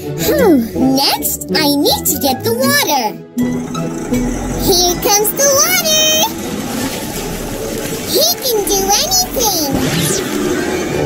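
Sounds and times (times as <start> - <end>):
water pouring in a stream: 6.3 - 8.2.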